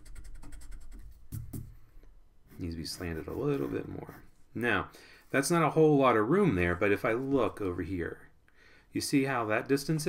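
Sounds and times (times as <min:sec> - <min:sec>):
eraser rubbing on paper: 0:02.5 - 0:04.4.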